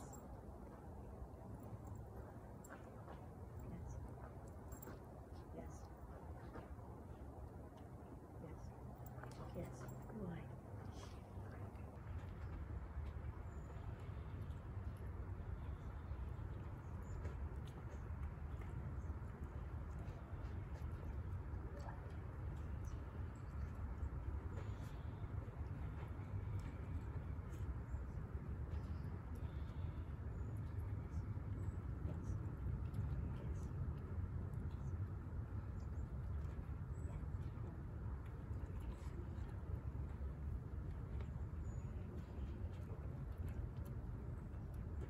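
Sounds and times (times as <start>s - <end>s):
low background rumble: 0.0s - 45.0s.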